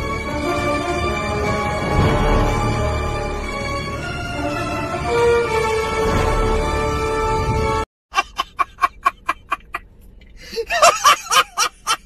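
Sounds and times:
man laughing hard: 0:08.1 - 0:12.0.

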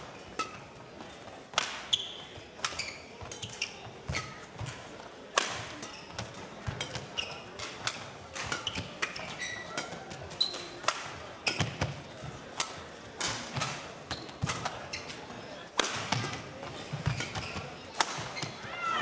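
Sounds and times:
racket striking shuttlecock: 0:01.5 - 0:02.0, 0:02.6 - 0:03.6, 0:05.3 - 0:05.9, 0:06.6 - 0:10.1, 0:10.7 - 0:11.9, 0:15.8 - 0:16.4, 0:17.0 - 0:18.4
shoe squeaks on court: 0:01.9 - 0:04.4, 0:05.8 - 0:07.7, 0:08.5 - 0:10.8, 0:14.1 - 0:15.3, 0:17.0 - 0:18.6.

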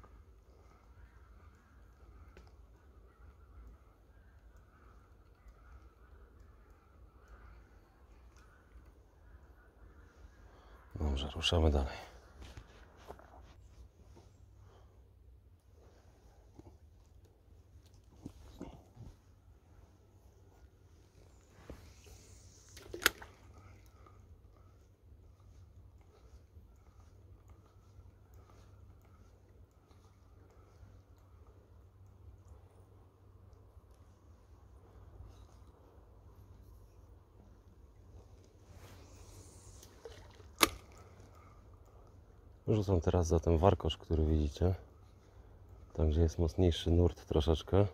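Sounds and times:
rod handling clicks and rustles: 0:16.5 - 0:19.5, 0:21.1 - 0:32.6, 0:38.3 - 0:42.2
fishing tackle rumble: 0:21.1 - 0:30.4, 0:39.0 - 0:41.9.

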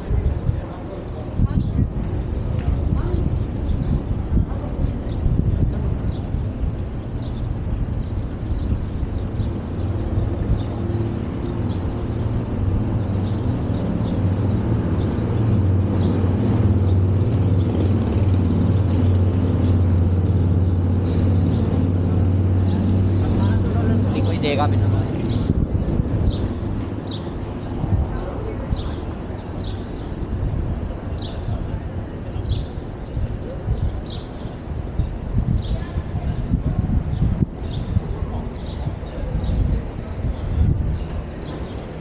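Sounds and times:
city street traffic: 0:00.0 - 0:42.0
vehicle engine humming: 0:05.6 - 0:32.3.

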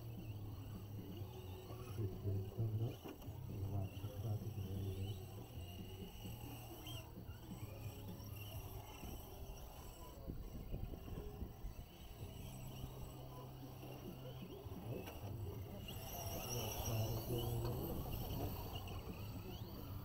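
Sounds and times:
toy truck motors whining: 0:00.0 - 0:20.0.

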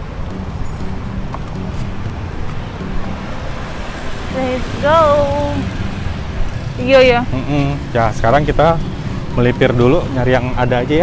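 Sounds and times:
motorbikes and cars passing: 0:00.0 - 0:11.0.

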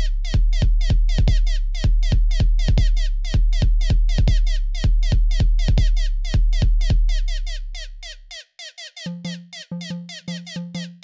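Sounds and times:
kick drum: 0:00.0 - 0:07.3
deep bass: 0:00.0 - 0:08.0
techno pattern: 0:09.1 - 0:11.0.

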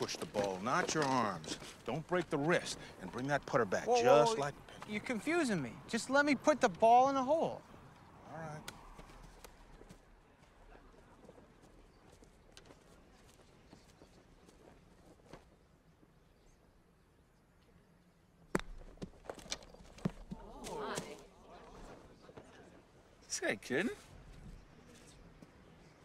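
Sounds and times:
faint outdoor ambience: 0:00.0 - 0:26.0.

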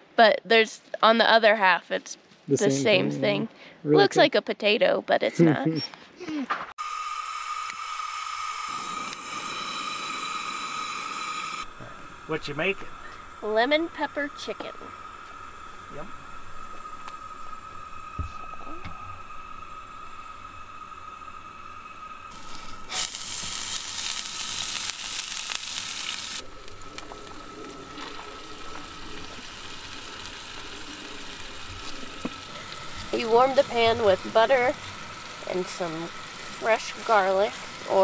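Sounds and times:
steady hiss: 0:06.8 - 0:38.0
faint high steady tone: 0:08.6 - 0:22.2
butter sizzling in frying pan: 0:22.3 - 0:38.0.

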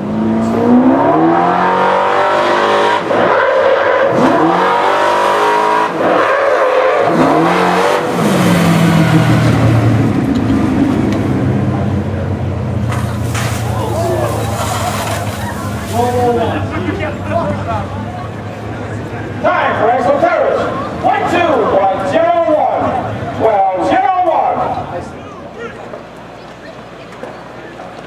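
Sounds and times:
truck engine accelerating through gears: 0:00.0 - 0:22.1.

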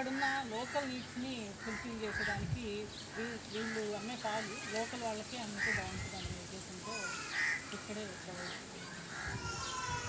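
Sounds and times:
crows cawing: 0:01.6 - 0:02.4, 0:03.1 - 0:06.2, 0:06.8 - 0:10.0.

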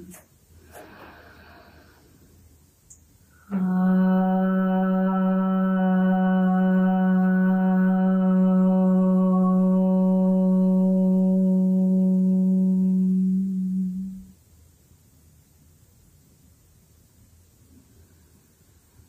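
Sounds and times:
woman chanting om: 0:03.3 - 0:14.4.

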